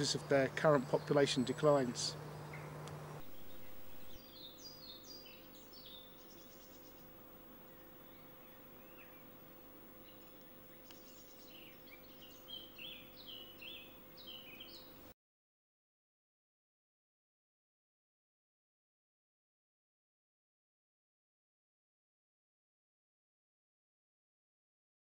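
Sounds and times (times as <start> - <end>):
steady low hum: 0.0 - 15.1
songbird singing high notes: 10.0 - 15.0.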